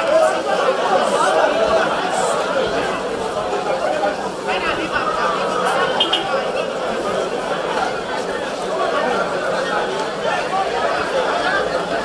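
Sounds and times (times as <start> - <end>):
crowd of people talking: 0.0 - 12.0.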